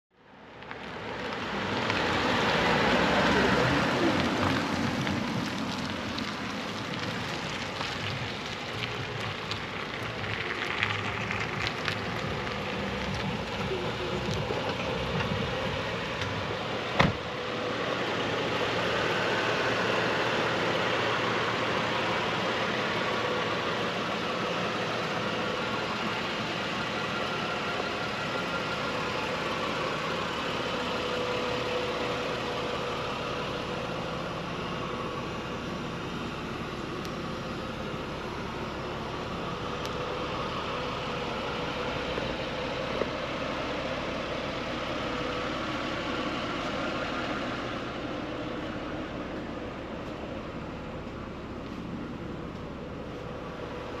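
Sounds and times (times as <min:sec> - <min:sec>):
outdoor background noise: 0:00.1 - 0:54.0
steady engine hum: 0:00.1 - 0:54.0.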